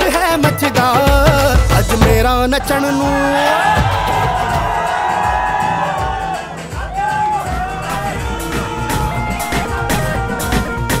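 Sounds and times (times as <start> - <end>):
crowd cheering and whooping: 3.4 - 11.0
music with long held note: 6.6 - 11.0.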